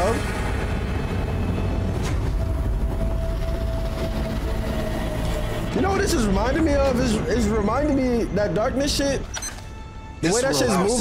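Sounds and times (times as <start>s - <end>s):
airship engine rumbling: 0.0s - 8.4s.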